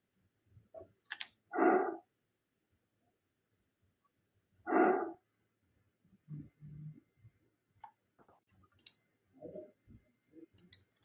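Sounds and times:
dog barks: 1.5s - 2.1s, 4.7s - 5.2s
mouse click: 10.6s - 11.0s.

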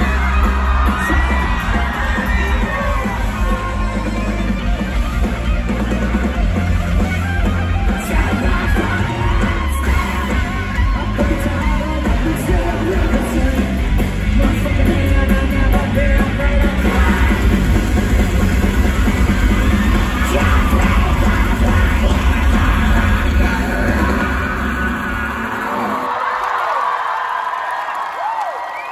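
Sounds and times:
live rock band playing loudly: 0.0s - 26.0s.

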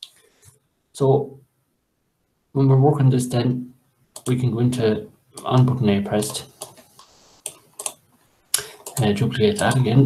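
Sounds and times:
computer mouse clicks: 4.2s - 4.4s, 5.4s - 10.0s.

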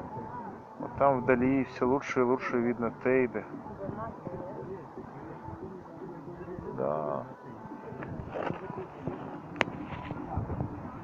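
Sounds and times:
faint chatter of people: 0.0s - 11.0s.

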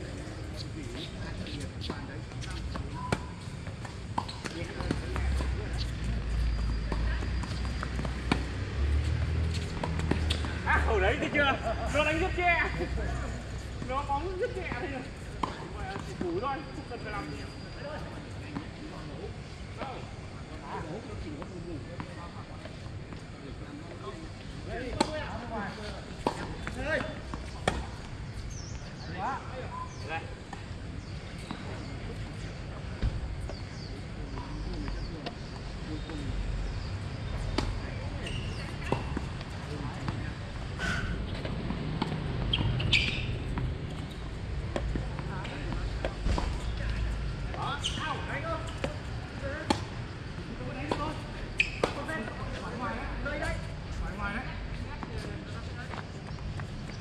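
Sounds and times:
tennis balls struck and bouncing: 1.8s - 11.2s, 24.8s - 25.3s, 26.1s - 28.6s, 36.8s - 48.0s, 48.6s - 52.3s.

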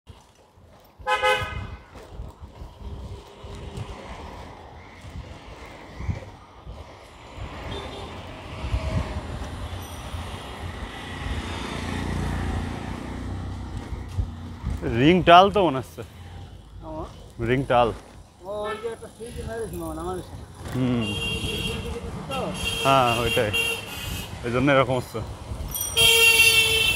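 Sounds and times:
street traffic noise: 0.1s - 26.9s
vehicle horn toot: 1.0s - 1.8s, 18.6s - 19.0s, 20.9s - 24.4s, 26.0s - 26.9s.

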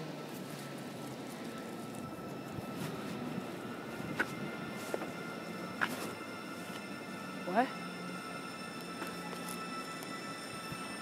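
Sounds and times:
bicycle tyres rolling on asphalt: 0.0s - 11.0s
wind noise: 1.7s - 7.5s.

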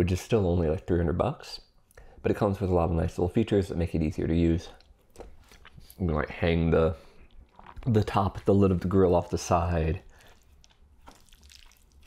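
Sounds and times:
wet squishes of noodles: 4.6s - 12.0s.

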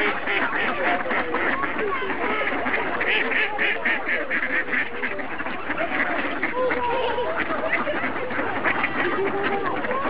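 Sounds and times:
ducks quacking: 0.0s - 10.0s.

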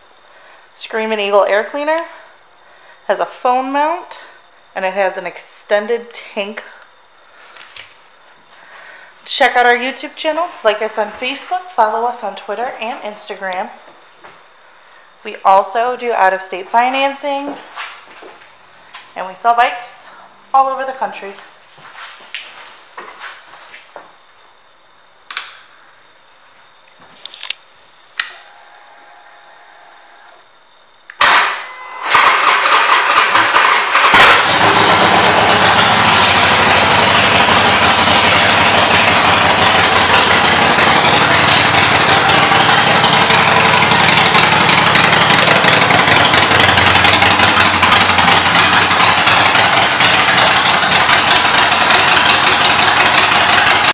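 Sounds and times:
starter motor cranking: 28.2s - 30.4s, 32.0s - 53.9s
motorcycle engine idling: 34.0s - 53.9s.

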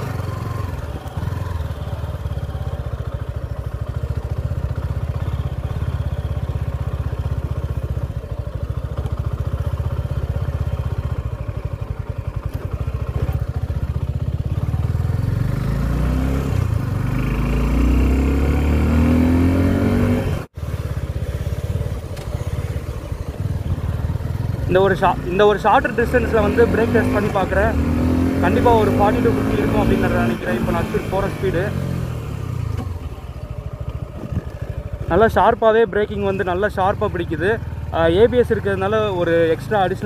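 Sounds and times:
motorcycle engine revving: 0.0s - 40.0s.

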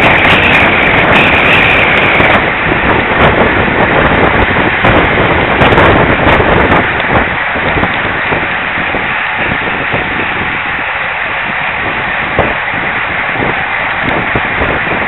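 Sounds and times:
bicycle tyre and road noise: 0.0s - 15.0s
wind noise on microphone: 0.0s - 15.0s.

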